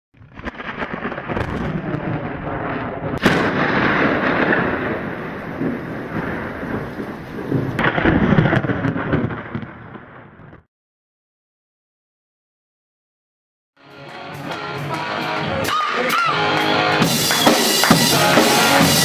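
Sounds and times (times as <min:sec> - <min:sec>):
rolling thunder: 0:00.2 - 0:10.7
sharp thunder crack: 0:00.2 - 0:10.7.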